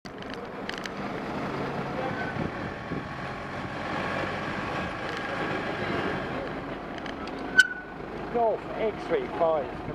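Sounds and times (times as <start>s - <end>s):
road traffic noise: 0.0s - 9.9s
vehicle engine running: 0.1s - 9.9s.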